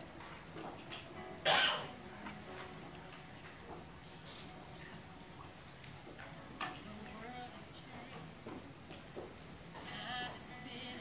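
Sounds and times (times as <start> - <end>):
faint background murmur: 0.0 - 11.0.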